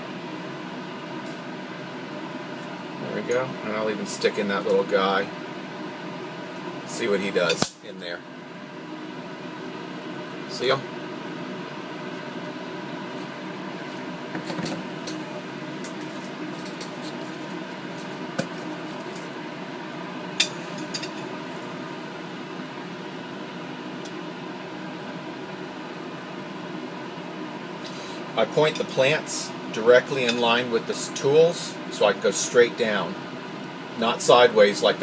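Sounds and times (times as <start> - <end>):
fan hum: 0.0 - 35.0.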